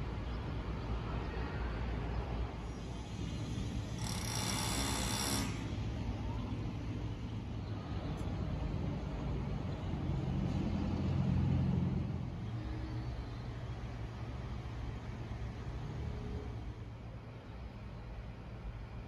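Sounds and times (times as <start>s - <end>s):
low rumble of distant traffic: 0.0s - 19.0s.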